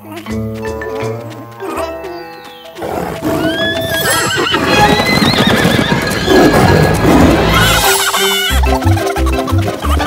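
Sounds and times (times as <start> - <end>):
galloping hooves rumble: 0.0 - 10.0
music: 0.0 - 10.0
horses whinnying: 2.8 - 8.7.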